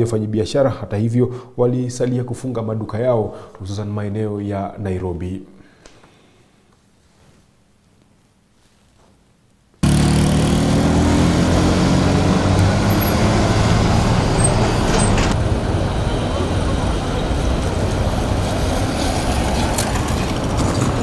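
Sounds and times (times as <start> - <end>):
traffic: 9.8 - 21.0
vehicle engine humming: 9.8 - 21.0.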